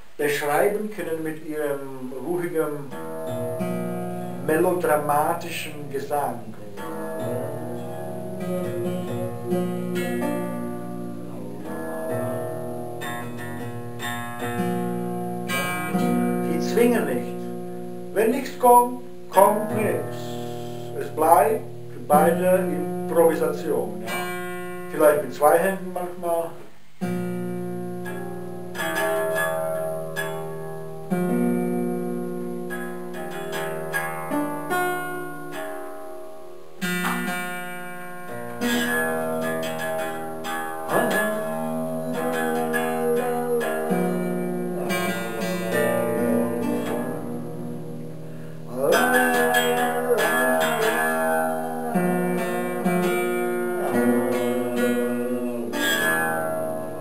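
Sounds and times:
acoustic guitar chords ringing: 0.0 - 57.0.

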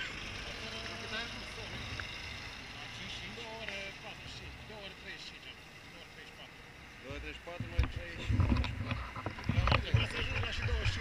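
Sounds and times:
bus driving past: 0.0 - 7.1
street traffic rumble: 0.0 - 11.0.

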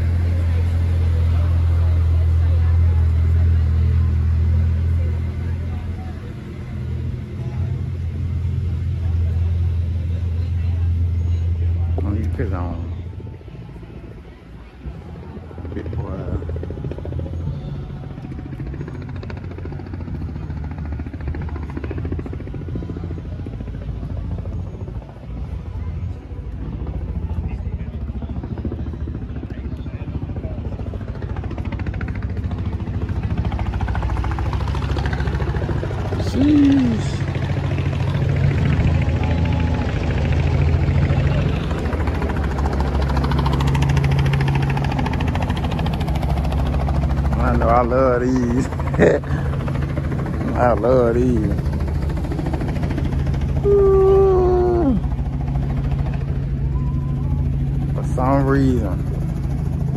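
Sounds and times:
low engine drone: 0.0 - 59.9.

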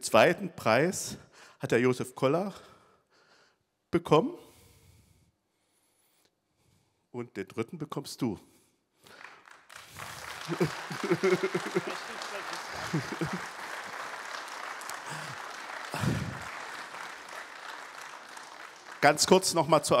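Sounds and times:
audience applauding: 9.0 - 20.0
voices: 10.4 - 18.0.

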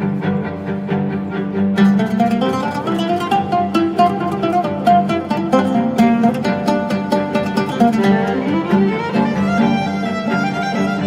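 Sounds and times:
bowed string quartet: 0.0 - 11.0
plucked oud notes: 0.0 - 11.0.

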